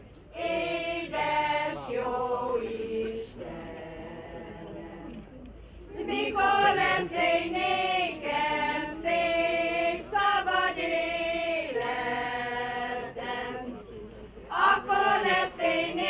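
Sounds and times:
choir singing a cappella: 0.3 - 5.3, 5.9 - 13.9, 14.5 - 16.0.

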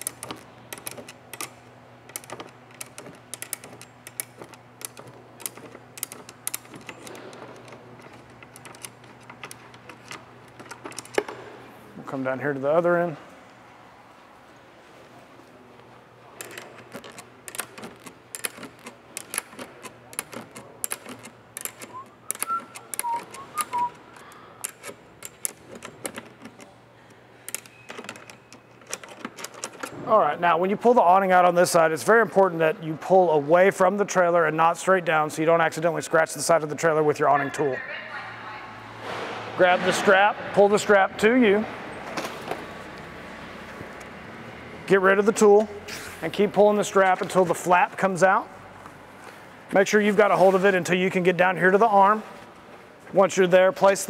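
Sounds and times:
metal latch clicks and rattles: 0.0 - 11.4, 16.4 - 26.7, 27.5 - 30.0.

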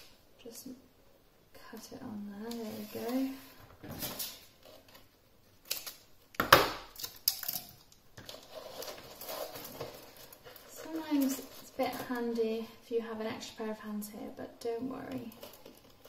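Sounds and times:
cardboard and tape rustling: 2.4 - 6.1, 8.2 - 12.5, 15.0 - 16.0.

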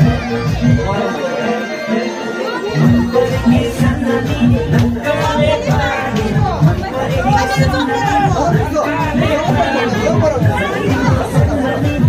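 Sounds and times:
crowd chatter: 0.0 - 12.0
dance music with steady beat: 0.0 - 12.0.

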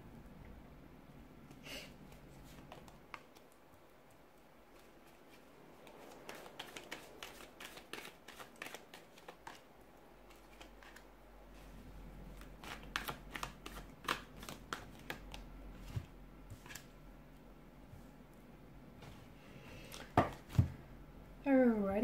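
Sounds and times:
cards shuffled and dealt: 2.1 - 3.6, 4.7 - 11.1, 12.4 - 16.9, 19.8 - 20.7.

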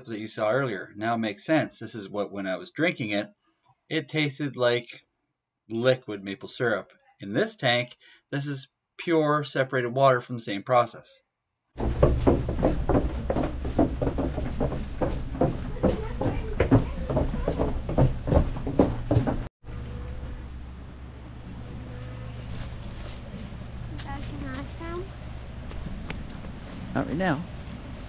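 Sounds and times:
footsteps on wooden boards: 11.8 - 19.5
steady low hum: 11.8 - 28.0.

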